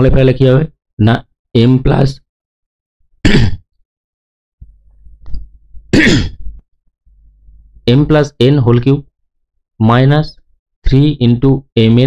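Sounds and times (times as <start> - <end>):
man clearing his throat: 3.2 - 3.6, 5.9 - 6.6.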